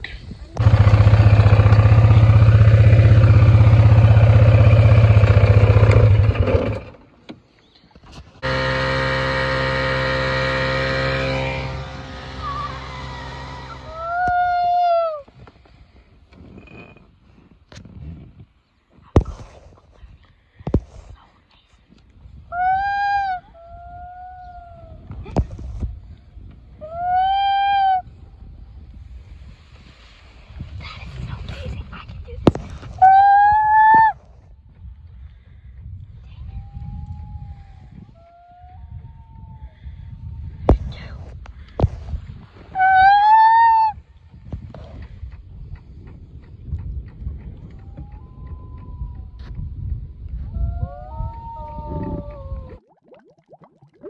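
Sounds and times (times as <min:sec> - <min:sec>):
quad engine running: 0:00.6 - 0:07.1, 0:08.4 - 0:14.4
small outboard motor running: 0:00.6 - 0:07.2, 0:08.4 - 0:14.2
short high calls: 0:42.8 - 0:44.0.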